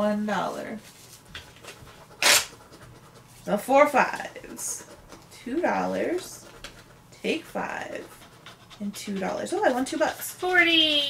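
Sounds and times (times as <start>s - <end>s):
scratch-off tickets scratched: 0.5s - 11.0s.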